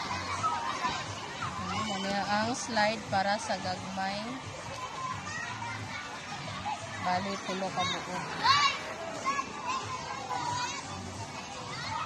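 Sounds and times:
murmur of people: 0.0s - 12.0s.

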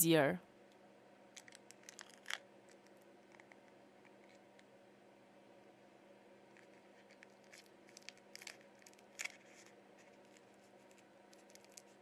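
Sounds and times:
faint steady hum: 0.0s - 12.0s
plastic film crinkling and clicking: 1.4s - 4.5s, 6.6s - 12.0s.

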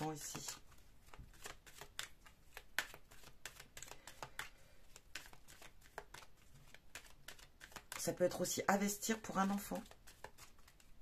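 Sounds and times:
cards shuffling: 0.0s - 11.0s.

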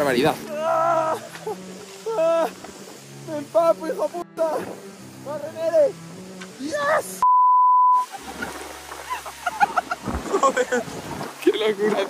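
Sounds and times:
waterfall: 0.0s - 7.2s, 8.0s - 12.0s
wind: 0.0s - 7.3s, 7.9s - 12.0s
censor bleep: 7.2s - 8.1s.

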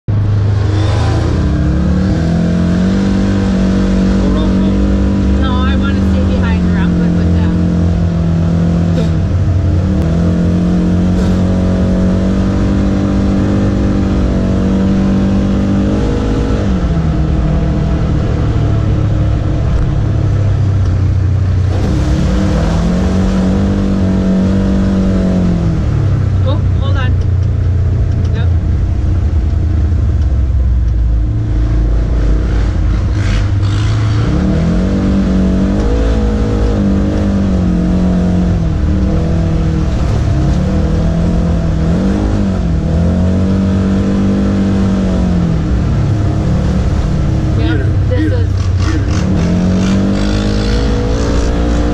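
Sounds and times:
off-road vehicle engine revving: 0.1s - 51.9s.

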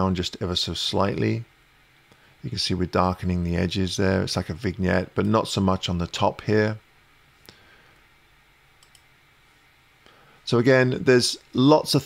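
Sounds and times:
faint computer mouse clicks: 8.8s - 9.1s.

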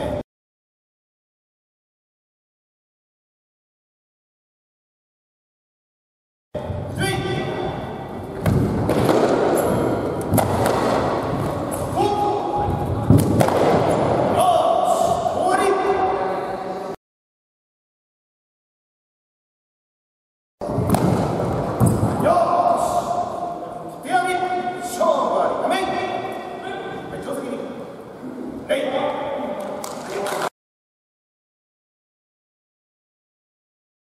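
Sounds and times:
heavy thuds: 7.9s - 14.4s.

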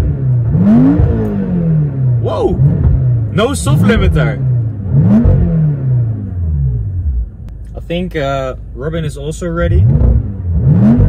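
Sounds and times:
car engine revving down to idle: 0.0s - 11.0s.

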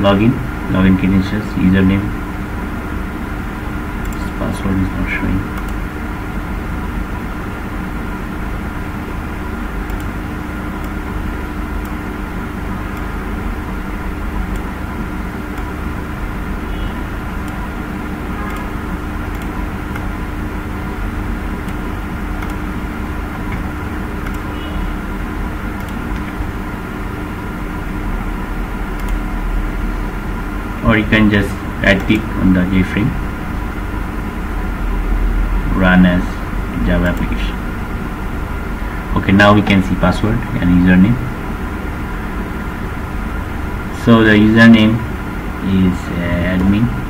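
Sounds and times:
low rumbling hum: 0.0s - 47.0s
faint clicks: 9.8s - 10.2s, 29.0s - 29.2s.

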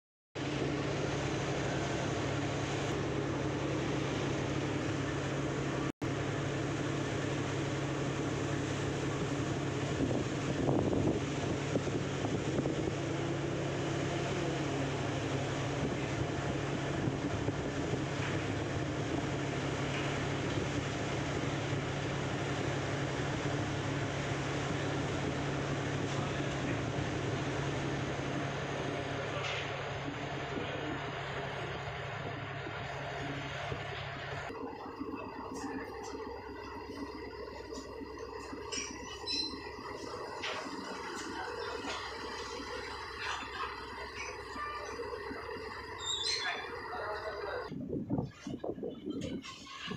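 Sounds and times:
boat engine drone: 0.4s - 49.9s
wind and water noise: 0.4s - 49.9s.

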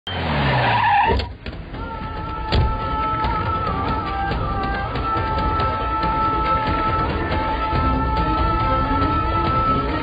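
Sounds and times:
steady music tones: 1.2s - 10.0s.

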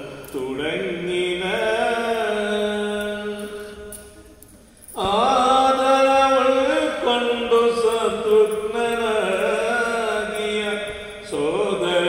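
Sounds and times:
man chanting: 0.0s - 3.9s, 5.0s - 12.0s.

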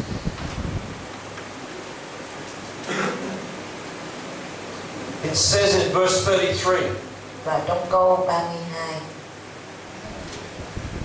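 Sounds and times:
recording hiss: 0.0s - 11.0s.

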